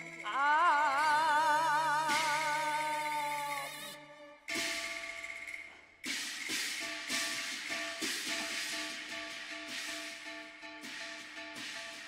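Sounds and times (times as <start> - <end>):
percussion strikes: 0.0 - 12.0
bright cymbal crash: 2.0 - 12.0.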